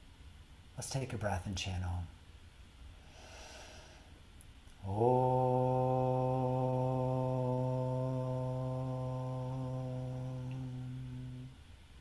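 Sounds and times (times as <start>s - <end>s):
man chanting om: 4.8s - 11.6s.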